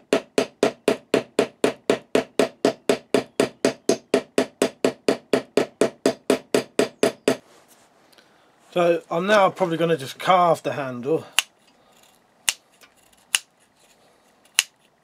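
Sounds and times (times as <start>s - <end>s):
small hammer striking metal: 12.4s - 12.6s.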